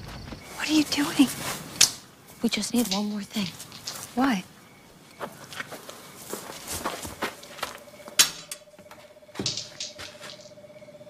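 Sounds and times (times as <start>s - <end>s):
footsteps scuffing on pavement: 5.1s - 7.8s.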